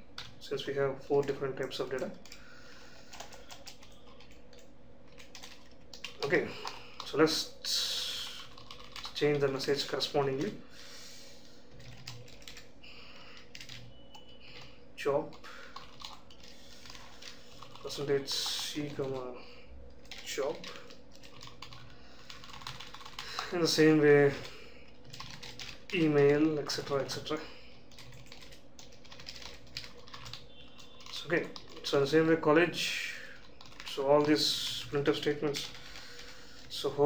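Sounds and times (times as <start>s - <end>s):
computer keyboard typing: 0.1s - 10.6s, 11.7s - 19.3s, 19.9s - 32.4s, 33.4s - 36.8s.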